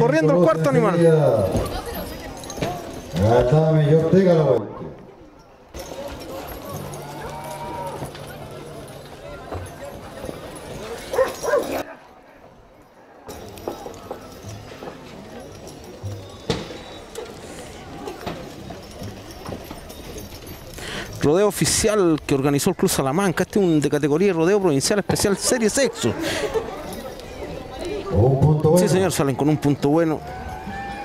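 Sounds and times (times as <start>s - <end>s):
distant crowd voices: 0.0s - 31.0s
horses on dirt: 0.2s - 31.0s.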